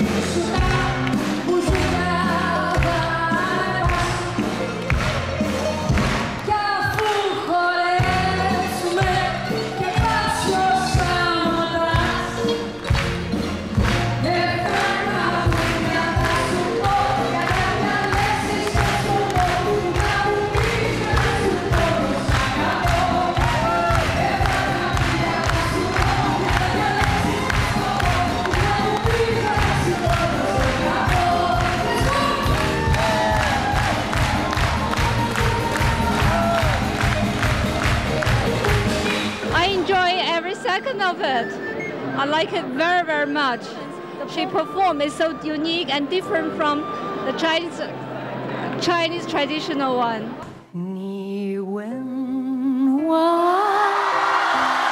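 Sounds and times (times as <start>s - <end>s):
woman singing: 0.0s - 4.6s, 6.4s - 12.8s, 13.9s - 37.2s, 50.7s - 54.9s
audience clapping along: 0.0s - 10.2s, 12.0s - 39.9s
live band music: 0.0s - 47.4s.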